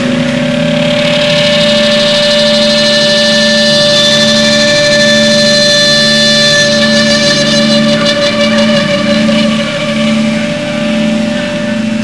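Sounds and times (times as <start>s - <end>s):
distorted electric guitars: 0.0s - 12.0s
steady drone: 0.0s - 12.0s.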